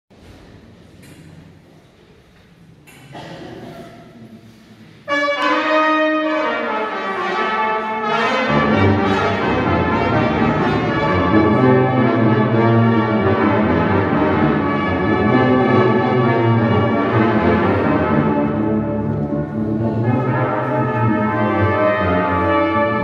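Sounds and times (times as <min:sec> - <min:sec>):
tuba low notes: 0:05.0 - 0:23.0
brass ensemble playing: 0:05.1 - 0:23.0.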